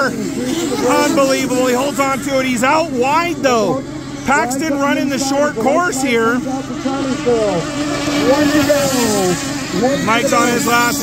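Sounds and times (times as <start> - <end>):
model boat engines whining: 0.0 - 11.0.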